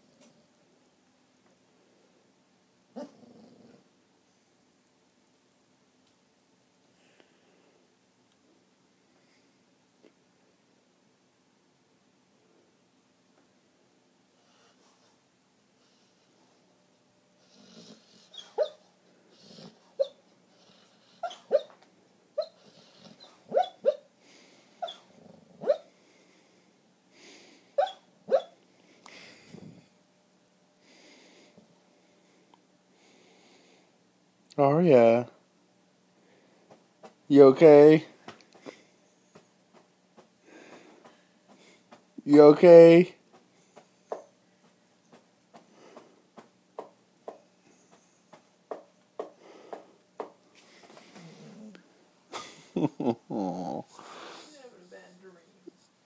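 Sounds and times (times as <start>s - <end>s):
sleeping dog muffled vocal sound: 3.0s - 3.9s, 51.0s - 51.9s, 53.2s - 54.2s
dog yipping in sleep: 18.3s - 18.9s, 20.0s - 20.2s, 21.2s - 21.8s, 22.4s - 24.1s, 24.8s - 25.9s, 27.8s - 28.6s
soft breathy huffs: 40.4s - 42.0s, 53.9s - 55.0s.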